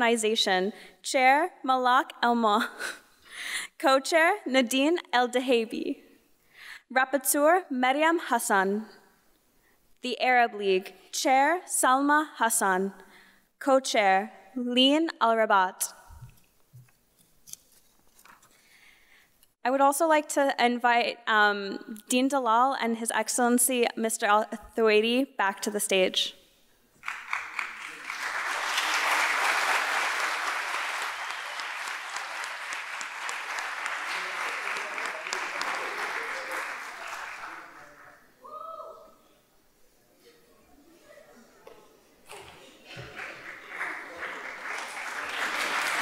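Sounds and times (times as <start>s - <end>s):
audience applauding: 27.0s - 38.1s, 42.4s - 46.0s.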